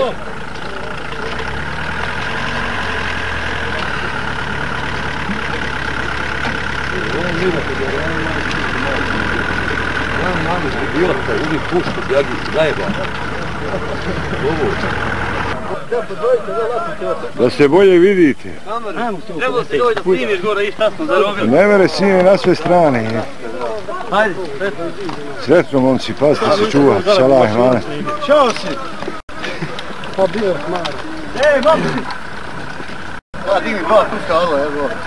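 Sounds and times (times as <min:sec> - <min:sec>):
engine humming: 0:00.0 - 0:16.4, 0:19.6 - 0:35.0
faint men's voices: 0:00.0 - 0:35.0.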